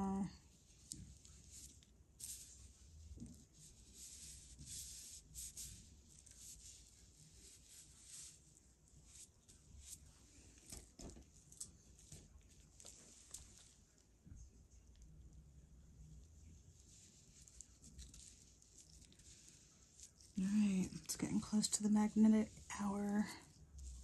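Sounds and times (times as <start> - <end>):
brush swishing on paper: 0.3 - 11.0, 11.8 - 13.9, 16.7 - 24.0.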